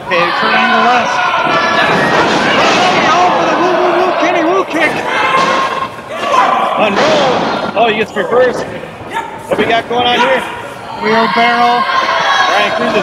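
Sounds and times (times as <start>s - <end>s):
men talking: 0.0s - 1.4s, 3.0s - 5.4s, 6.0s - 13.0s.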